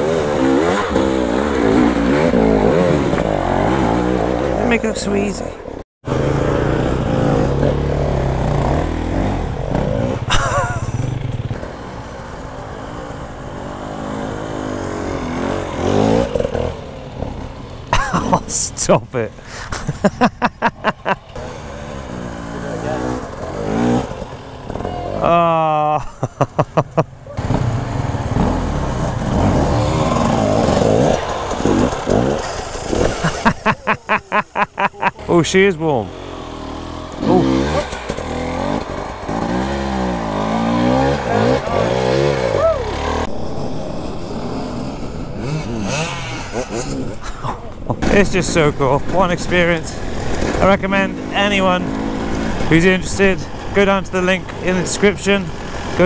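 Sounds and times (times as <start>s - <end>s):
dirt bike engine revving: 0.0s - 5.4s, 6.0s - 19.3s, 19.9s - 56.0s.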